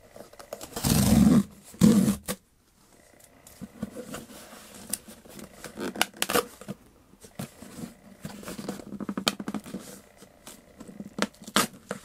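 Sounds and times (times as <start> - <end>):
cardboard box ripping: 0.6 - 2.4.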